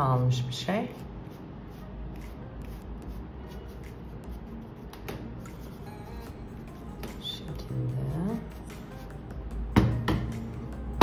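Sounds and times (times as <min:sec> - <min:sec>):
paintbrush scratchy brushing: 0:00.8 - 0:06.9.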